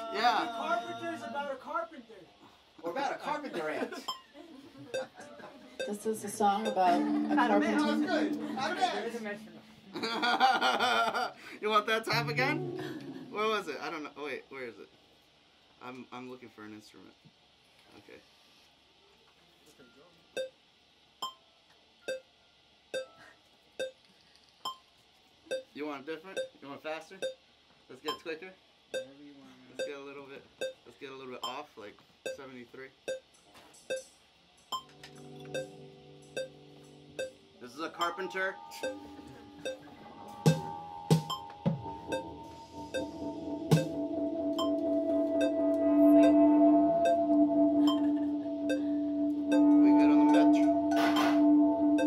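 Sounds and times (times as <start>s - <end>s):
slow ticking beat: 4.9s - 5.2s, 5.8s - 8.9s, 20.4s - 20.6s, 21.2s - 21.4s, 22.0s - 22.3s, 22.9s - 23.2s, 23.8s - 24.0s, 25.5s - 26.6s, 27.2s - 27.4s, 28.9s - 29.2s, 29.8s - 30.0s, 30.6s - 31.6s, 32.2s - 52.0s
guitar held tone: 5.8s - 10.8s, 12.1s - 13.9s, 34.8s - 52.0s
keyboard held tone: 12.1s - 13.5s, 34.8s - 52.0s
electronic metronome clicks: 20.4s - 20.6s, 21.2s - 21.4s, 22.0s - 22.3s, 22.9s - 23.1s, 23.8s - 24.8s, 25.5s - 25.7s, 28.9s - 29.1s, 30.6s - 30.8s, 33.1s - 34.1s, 34.7s - 37.4s, 38.8s - 39.0s, 40.5s - 46.4s, 47.0s - 51.4s.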